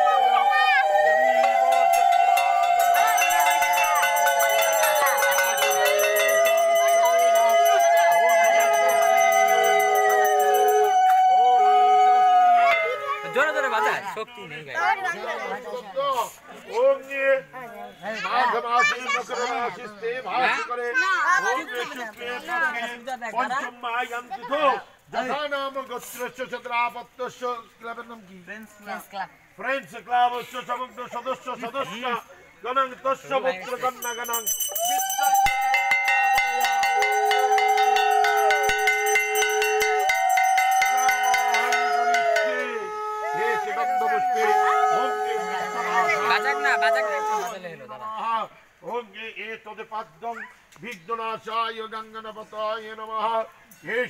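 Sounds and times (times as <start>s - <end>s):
brass hand bell ringing: 1.7s - 10.9s, 33.9s - 42.7s
conch shell blown: 1.7s - 11.2s, 34.8s - 46.6s.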